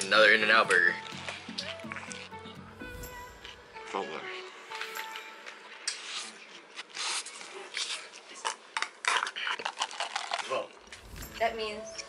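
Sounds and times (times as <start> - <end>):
eating and handling plastic containers: 0.0 - 2.8, 3.8 - 11.1.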